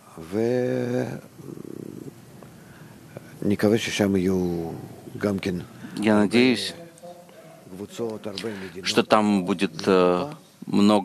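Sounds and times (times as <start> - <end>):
low rattling vocal creak: 0.9 - 6.2.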